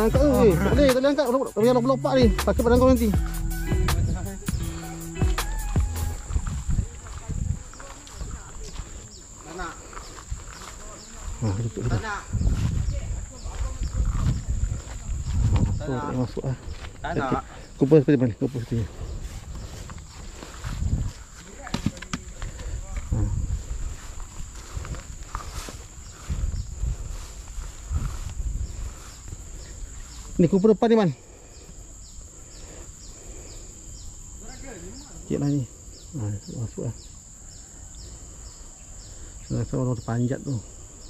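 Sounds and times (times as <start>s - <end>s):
bird chirps: 0.0s - 6.5s
high-pitched insect drone: 0.0s - 41.0s
footsteps through long grass: 2.7s - 30.4s.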